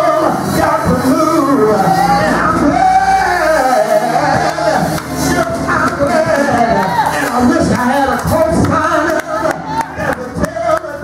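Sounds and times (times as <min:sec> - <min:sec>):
instrumental backing: 0:00.0 - 0:11.0
man chanting melodically: 0:00.0 - 0:11.0.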